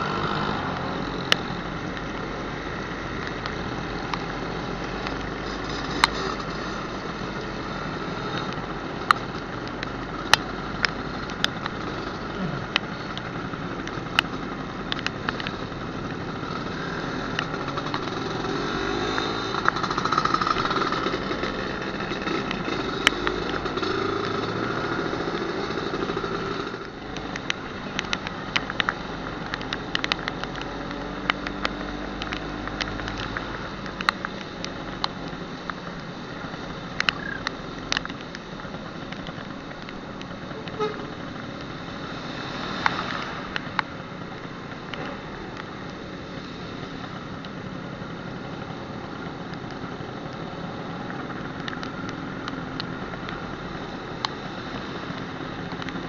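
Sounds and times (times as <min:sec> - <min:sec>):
raindrops hitting camera: 0:00.0 - 0:56.0
wind and road noise: 0:00.0 - 0:56.0.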